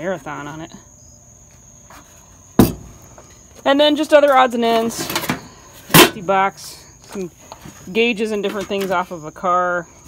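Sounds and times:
crickets chirring: 0.0s - 10.0s
sharp knock: 2.6s - 2.9s.

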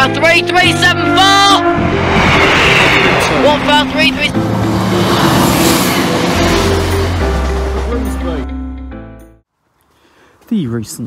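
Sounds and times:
train passing: 0.5s - 8.8s.

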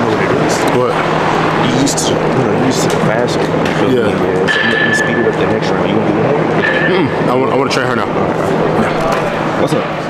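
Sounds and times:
loud steady background noise: 0.0s - 10.0s
people talking: 0.0s - 10.0s.

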